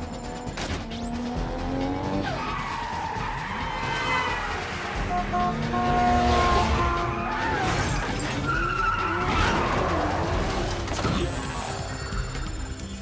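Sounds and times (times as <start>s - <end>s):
car engines revving: 0.0s - 12.6s
film score music: 0.0s - 13.0s.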